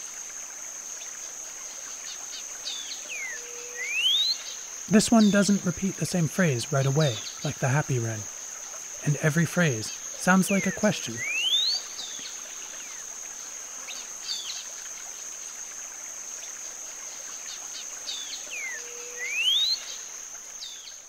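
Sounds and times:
bird whistling rising phrases: 3.2s - 4.4s, 10.7s - 11.8s, 18.6s - 19.8s.

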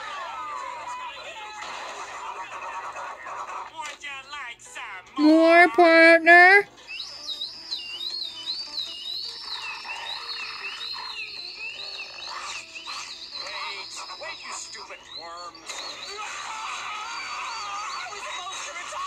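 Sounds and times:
commotion of voices: 5.2s - 6.6s
cartoon music: 5.2s - 18.7s
warbling whistle-like tones: 7.0s - 16.2s.

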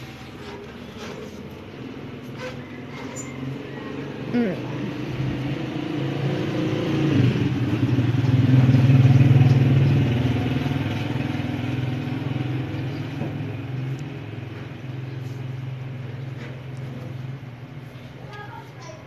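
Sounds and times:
motor engine droning: 0.4s - 18.2s.

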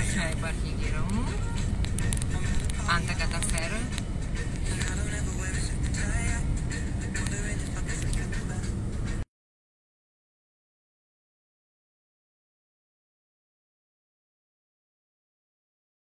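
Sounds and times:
voices: 0.0s - 4.0s
vehicle rumble from inside cabin: 0.0s - 9.2s.

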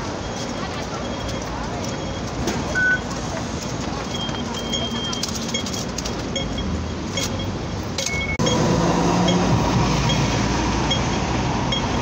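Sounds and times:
city street traffic: 0.0s - 12.0s
crossing signal beeping: 0.0s - 12.0s.

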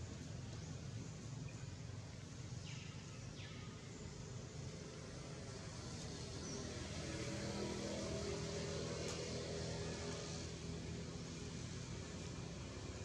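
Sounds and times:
faint engine-like hum: 0.0s - 13.0s.

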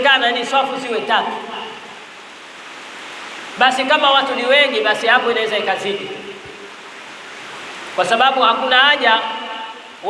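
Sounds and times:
man's voice: 0.0s - 1.8s, 3.6s - 6.3s, 8.0s - 9.8s
background hiss: 0.0s - 10.0s.

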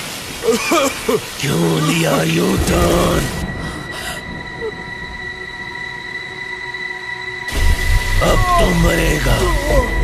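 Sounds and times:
high-pitched suspense drone: 1.9s - 10.0s
low rumble: 2.4s - 10.0s.

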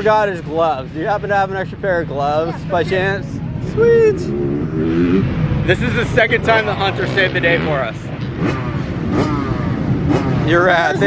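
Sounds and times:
dirt bike engine revving: 4.1s - 11.0s.

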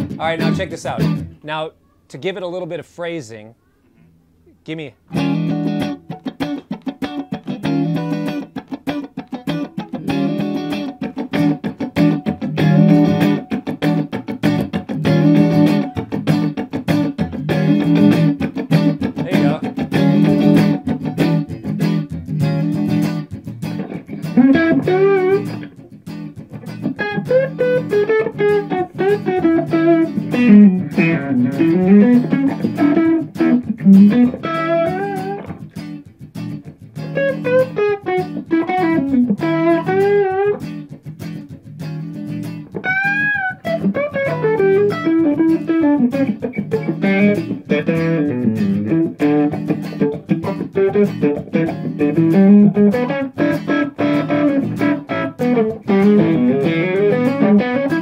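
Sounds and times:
electric guitar funk rhythm: 0.0s - 1.7s, 4.0s - 58.0s.

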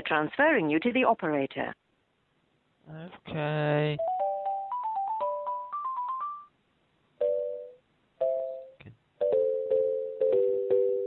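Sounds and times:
telephone hold music: 4.0s - 6.6s, 7.2s - 11.0s.

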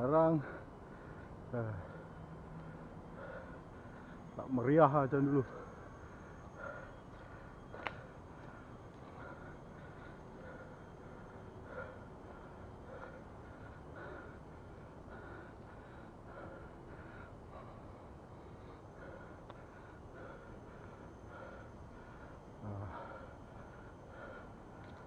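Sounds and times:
heavy rhythmic breathing: 0.0s - 25.0s
low background noise: 0.0s - 25.0s.

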